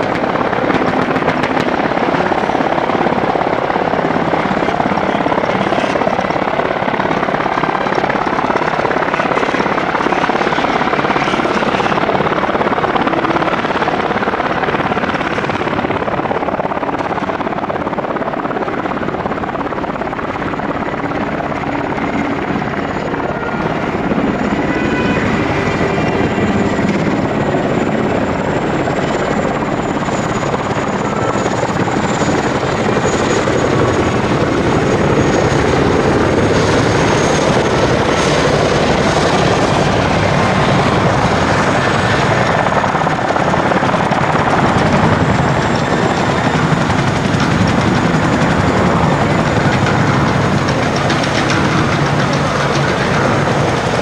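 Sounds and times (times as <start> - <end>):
helicopter rotor and turbine: 0.0 - 54.0
high turbine whine: 0.0 - 54.0.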